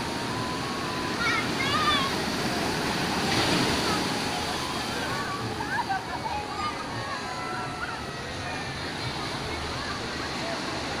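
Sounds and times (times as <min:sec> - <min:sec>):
faint voices of people: 0:01.0 - 0:11.0
surf breaking over rocks: 0:01.1 - 0:06.0.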